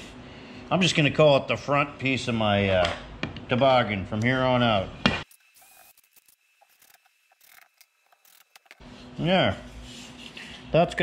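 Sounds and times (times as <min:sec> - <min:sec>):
drill chuck ratcheting clicks: 0:05.6 - 0:08.8.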